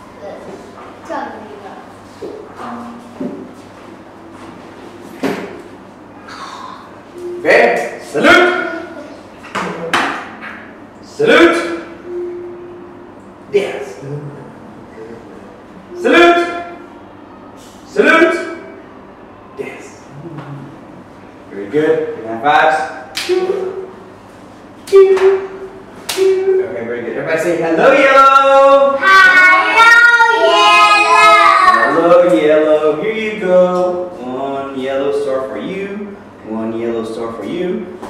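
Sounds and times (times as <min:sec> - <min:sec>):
hand slaps of high fives: 0:23.1 - 0:23.5.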